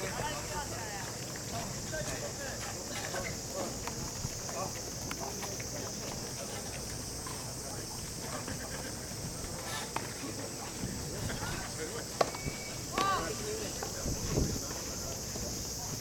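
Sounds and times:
faint distant voices: 0.0 - 16.0.

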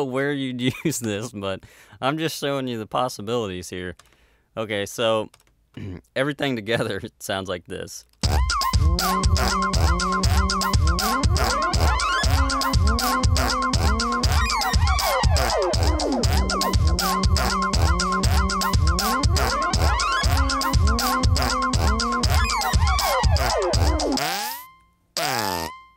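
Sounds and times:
electronic drum beat: 8.2 - 24.3
synth gliding in pitch: 8.3 - 24.6.

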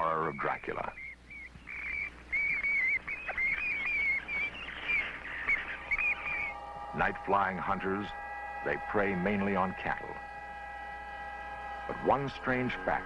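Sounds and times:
bat squeaking: 0.2 - 6.6
synthesizer tones: 2.6 - 13.0.

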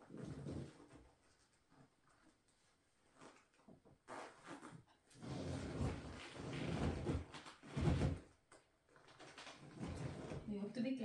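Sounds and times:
zip rasping pulls: 3.2 - 8.2.

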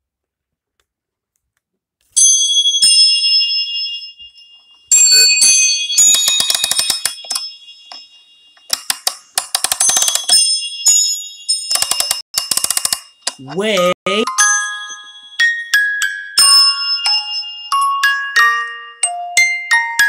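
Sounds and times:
high sustained bell chimes: 2.2 - 8.7.

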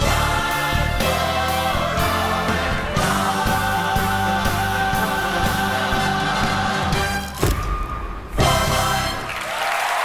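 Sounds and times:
audience applause: 9.2 - 10.0.

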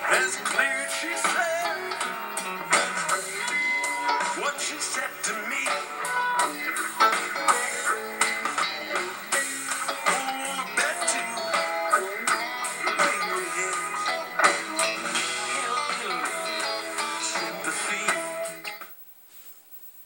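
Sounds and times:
rock band with electric guitars: 0.0 - 19.0.

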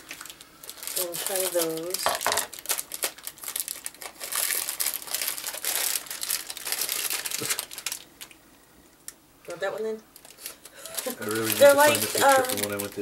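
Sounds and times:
foil wrapper crinkling: 0.0 - 8.4, 10.1 - 13.0.

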